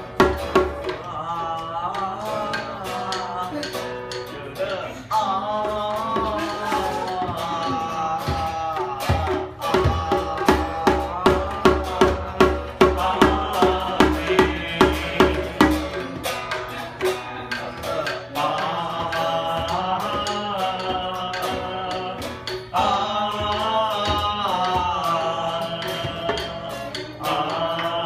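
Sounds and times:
hand drum beating: 0:00.0 - 0:04.4, 0:05.1 - 0:28.0
person singing: 0:00.0 - 0:28.0
strummed acoustic guitar: 0:00.0 - 0:28.0.

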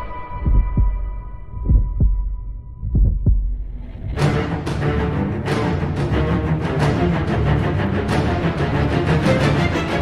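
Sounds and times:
deep heartbeat thumps: 0:00.3 - 0:04.3.

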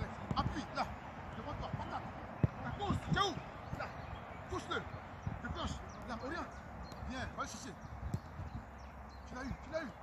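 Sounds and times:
football knocking on foot: 0:08.0 - 0:08.6.

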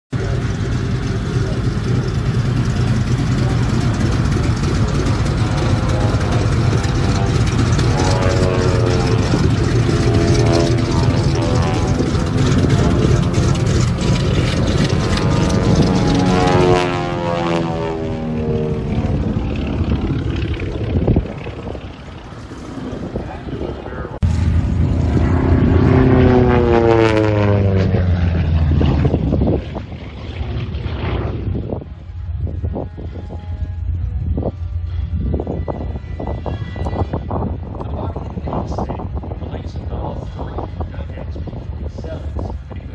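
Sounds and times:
propeller note sweeping in pitch: 0:00.1 - 0:42.9.

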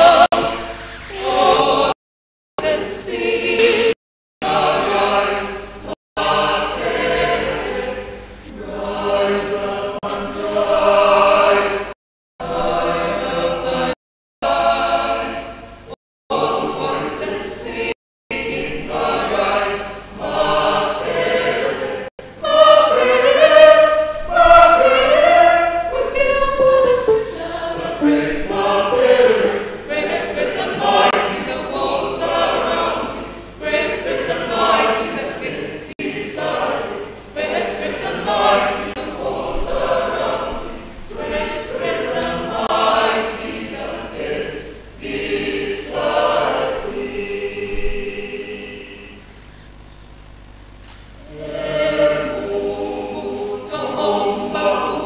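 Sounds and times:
many voices singing an anthem: 0:00.0 - 0:02.0, 0:02.6 - 0:15.6, 0:16.3 - 0:49.2, 0:51.2 - 0:55.0.

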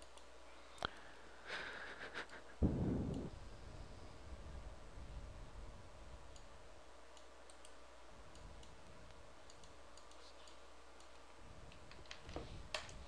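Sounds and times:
mouse and keyboard clicking: 0:09.4 - 0:13.0.

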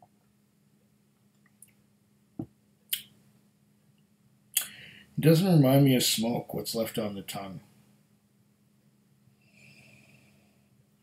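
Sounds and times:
lip and tongue smacks: 0:04.6 - 0:04.8
loud breath: 0:04.6 - 0:05.2, 0:09.4 - 0:10.7.

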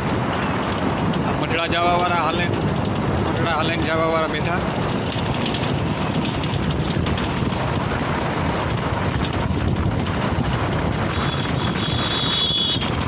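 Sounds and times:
vehicle road noise: 0:00.0 - 0:13.0
wind buffeting microphone: 0:00.0 - 0:13.0.

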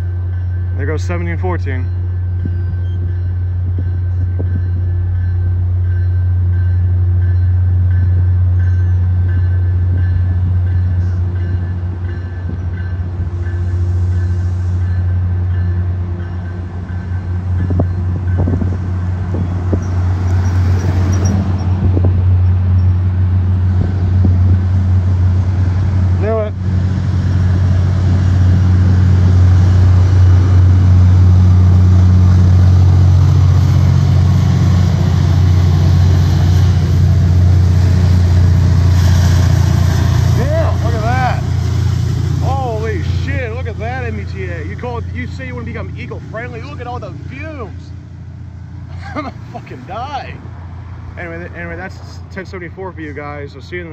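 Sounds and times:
diesel locomotive engine drone: 0:00.0 - 0:53.9.

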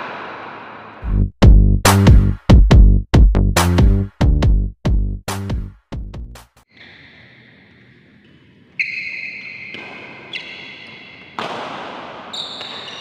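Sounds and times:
rackets hitting shuttlecock: 0:09.2 - 0:13.0.

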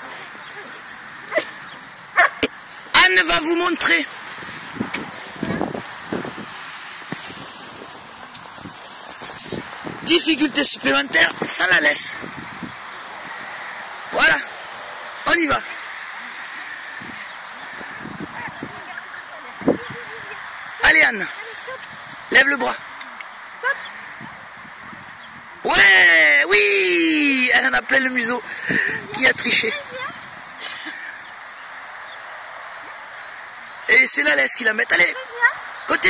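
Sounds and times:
steady hiss: 0:00.0 - 0:36.0
dog yipping: 0:02.2 - 0:02.5.

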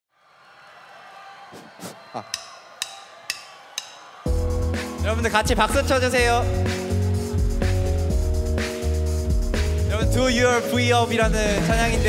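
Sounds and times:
drumstick count-in clicks: 0:02.3 - 0:04.0
band playing: 0:04.3 - 0:12.0.

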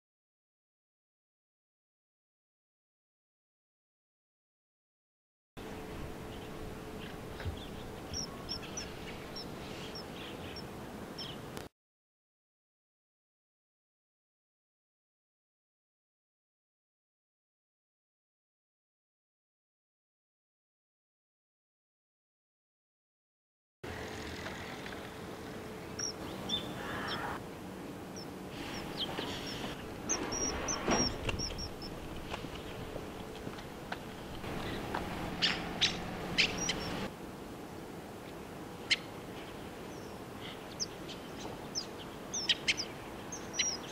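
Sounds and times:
outdoor background noise: 0:05.6 - 0:11.7, 0:23.8 - 0:43.9
steady low hum: 0:05.6 - 0:11.7, 0:23.8 - 0:43.9
bird chirping: 0:06.2 - 0:11.5, 0:25.8 - 0:27.4, 0:28.1 - 0:33.4, 0:34.2 - 0:37.1, 0:39.9 - 0:43.9
kingfisher calling: 0:06.3 - 0:11.4, 0:25.8 - 0:27.4, 0:28.1 - 0:33.2, 0:34.4 - 0:37.1, 0:39.9 - 0:43.9.

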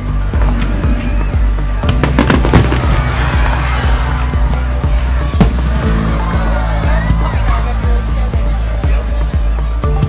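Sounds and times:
music playing: 0:00.0 - 0:10.0
fireworks bursting and crackling: 0:01.8 - 0:03.6.

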